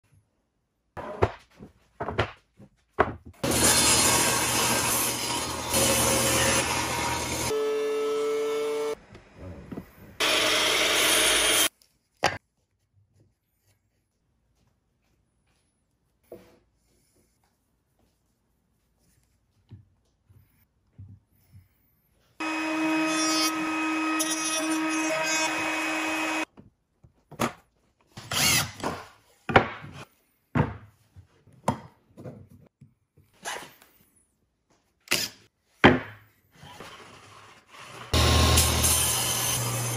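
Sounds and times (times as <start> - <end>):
wood knocking and scraping: 1.0 - 3.4
table saw cutting wood: 3.4 - 9.0, 10.2 - 11.7, 22.4 - 26.5, 28.2 - 28.8, 36.7 - 39.9
thickness planer whine: 3.4 - 9.0, 10.2 - 11.7, 22.4 - 26.4, 38.2 - 39.9
wood router running: 3.4 - 9.0, 10.2 - 11.7, 22.4 - 26.4, 38.2 - 39.9.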